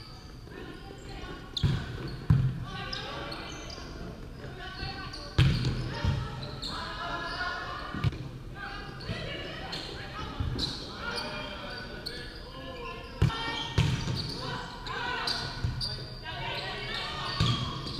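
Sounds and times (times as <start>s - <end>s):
players calling out in gym: 0.2s - 17.9s.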